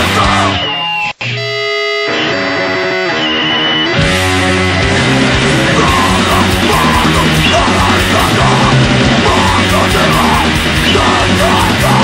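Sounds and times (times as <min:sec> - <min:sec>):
punk band playing: 0:00.0 - 0:12.0
ringing guitar chord: 0:01.2 - 0:05.8.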